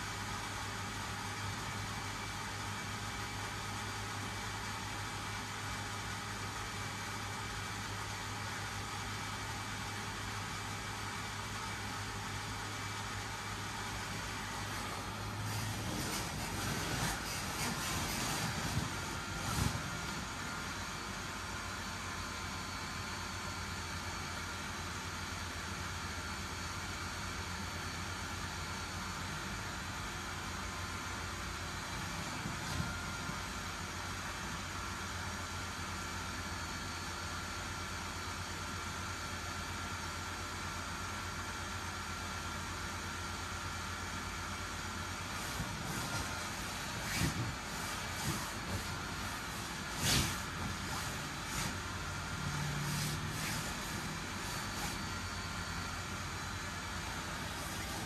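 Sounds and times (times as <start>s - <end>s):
blower fan humming: 7.2s - 22.8s, 31.1s - 33.9s, 44.8s - 58.0s.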